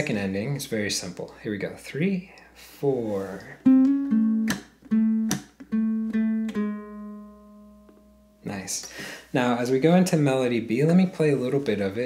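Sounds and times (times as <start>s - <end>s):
fingerpicked ukulele: 3.6s - 8.2s
percussive slaps on strings: 3.7s - 5.7s.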